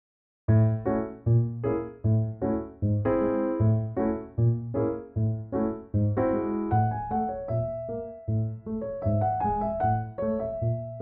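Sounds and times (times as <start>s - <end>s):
piano chords: 0.5s - 11.0s.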